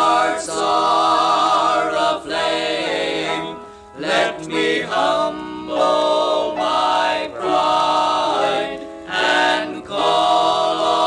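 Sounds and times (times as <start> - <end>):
male vocal quartet singing a hymn: 0.0 - 11.0.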